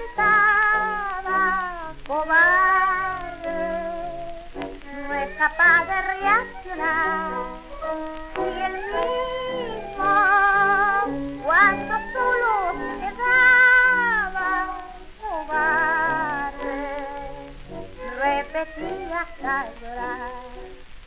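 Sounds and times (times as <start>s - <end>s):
old tango recording: 0.0s - 21.0s.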